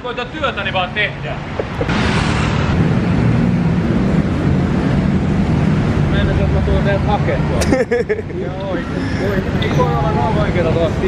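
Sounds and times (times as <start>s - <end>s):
road traffic engine rumble: 0.0s - 11.0s.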